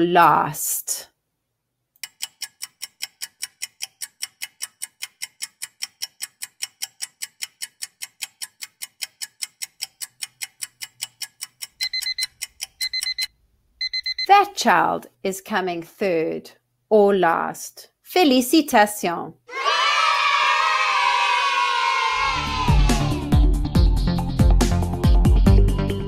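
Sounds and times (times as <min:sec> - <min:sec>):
clock ticking: 0:02.0 - 0:14.5
electronic alarm beeping: 0:11.8 - 0:14.4.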